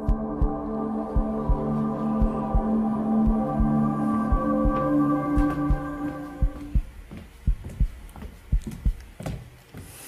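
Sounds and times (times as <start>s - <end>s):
held ambient chord: 0.0s - 7.2s
heartbeat thumps: 0.0s - 9.5s.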